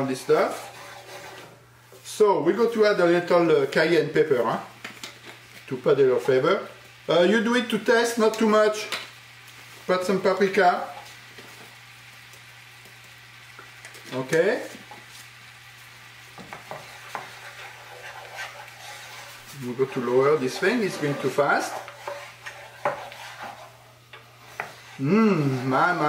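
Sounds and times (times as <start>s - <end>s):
sauce sizzling in a pan: 0.0s - 26.0s
wooden spoon stirring sauce: 0.2s - 1.5s, 16.3s - 26.0s.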